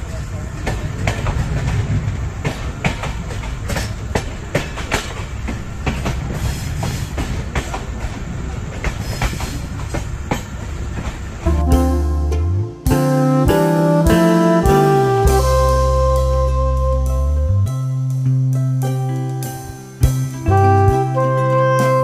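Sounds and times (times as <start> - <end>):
train wheels clattering over rails: 0.0 - 11.5
music: 11.5 - 22.0.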